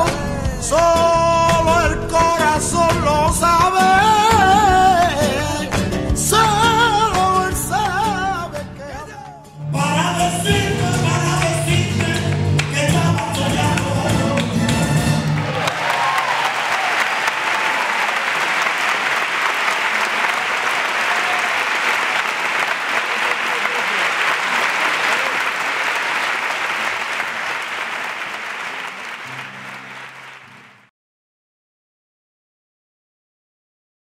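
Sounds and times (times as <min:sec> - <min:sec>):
flamenco music with singing: 0:00.0 - 0:16.2
audience applause: 0:11.1 - 0:30.9.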